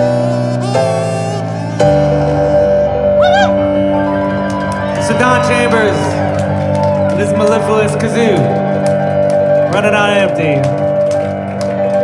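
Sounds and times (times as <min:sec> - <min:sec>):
keyboard sustained chord: 0:00.0 - 0:12.0.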